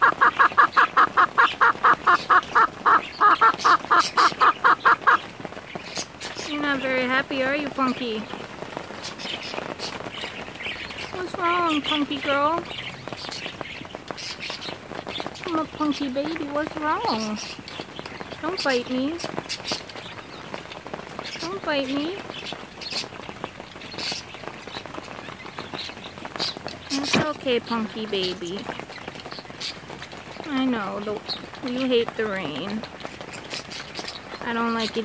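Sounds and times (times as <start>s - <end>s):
rain falling: 0.0s - 35.0s
raindrops ticking: 0.0s - 35.0s
water streaming off roof: 0.0s - 35.0s.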